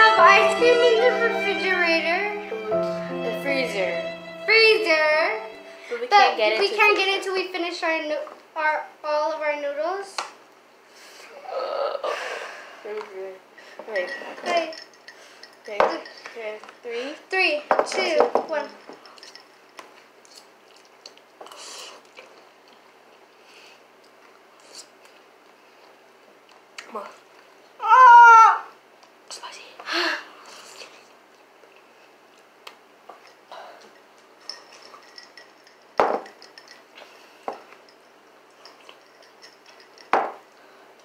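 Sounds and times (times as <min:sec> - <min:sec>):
slurping and chewing noodles: 0:20.2 - 0:27.4.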